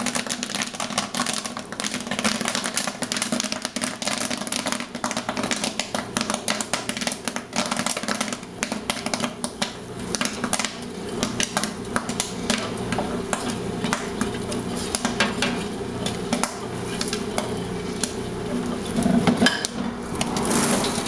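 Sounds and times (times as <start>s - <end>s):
popcorn popping: 0.0s - 21.0s.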